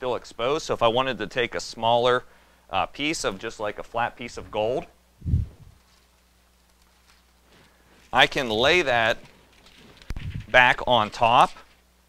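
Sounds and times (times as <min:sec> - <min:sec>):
dull low thump: 0:05.2 - 0:05.8.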